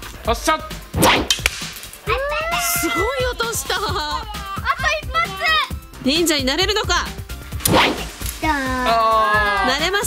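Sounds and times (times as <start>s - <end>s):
bowstring sharp crack: 1.0s - 2.1s, 7.6s - 8.6s.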